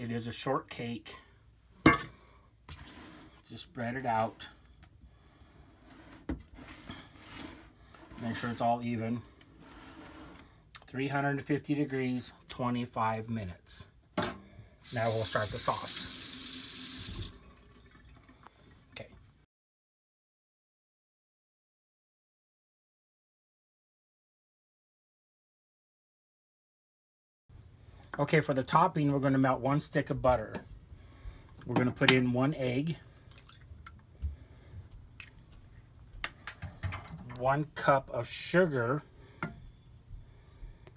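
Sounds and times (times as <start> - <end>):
tap running into sink: 16.0 - 17.4.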